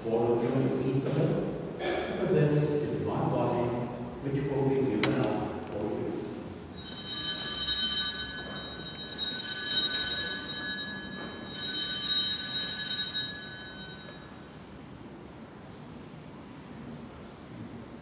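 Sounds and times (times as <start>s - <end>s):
altar bells jingling: 6.7s - 14.5s.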